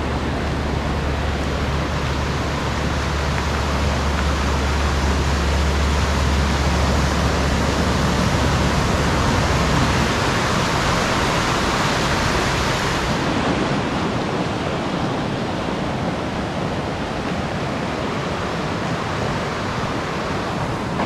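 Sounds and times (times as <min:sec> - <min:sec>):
water rushing over rocks: 0:00.0 - 0:21.0.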